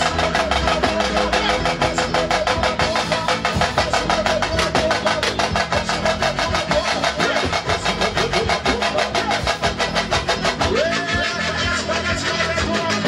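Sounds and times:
electric bass: 0.0 - 13.0
fast percussion: 0.0 - 13.0.

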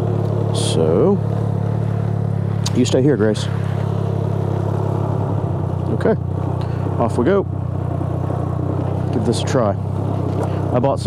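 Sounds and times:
three-cylinder engine idling: 0.0 - 11.0.

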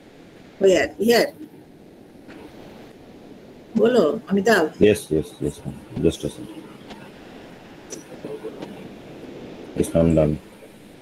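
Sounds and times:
open microphone background noise: 0.0 - 11.0
faint murmur of voice: 3.8 - 7.2, 7.9 - 9.0.

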